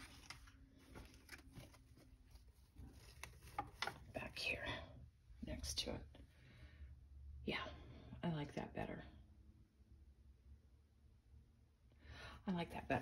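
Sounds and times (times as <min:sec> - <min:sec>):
artificial leaves rustling: 0:00.0 - 0:04.0.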